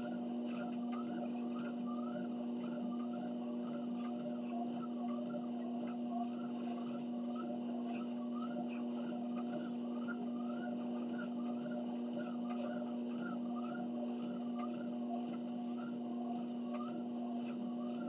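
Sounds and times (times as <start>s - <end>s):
footsteps on treadmill belt: 0.0s - 18.0s
treadmill humming: 0.0s - 18.0s.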